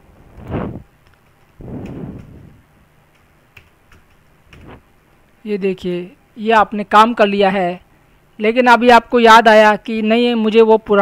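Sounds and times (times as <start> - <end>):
keyboard keys clicking: 3.1 - 4.6.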